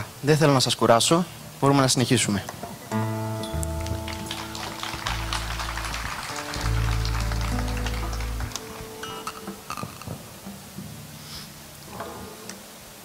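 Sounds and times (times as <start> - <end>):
low bass notes: 3.0 - 9.0
live band music: 3.1 - 10.2.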